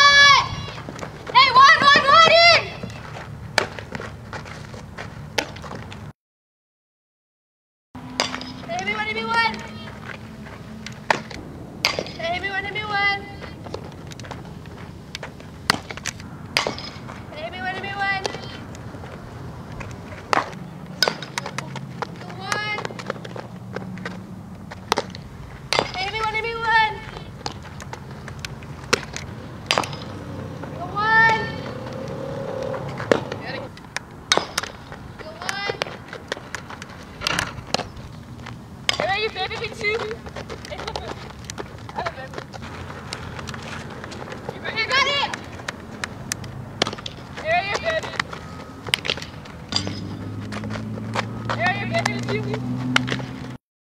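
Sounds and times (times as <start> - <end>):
softballs hit and caught in gloves: 10.9 - 12.2, 15.1 - 17.2, 19.8 - 26.3, 27.0 - 31.6, 32.6 - 37.9, 43.1 - 53.3.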